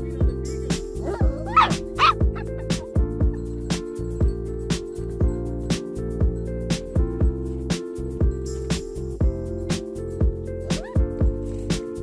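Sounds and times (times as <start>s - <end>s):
background music with drum beat: 0.0s - 12.0s
puppy yipping: 1.0s - 2.8s, 10.7s - 11.1s.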